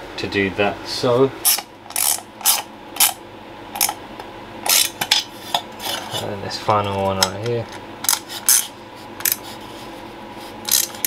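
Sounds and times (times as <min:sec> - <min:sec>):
socket ratchet clicking: 0:01.5 - 0:03.2, 0:03.8 - 0:04.0, 0:10.7 - 0:11.0.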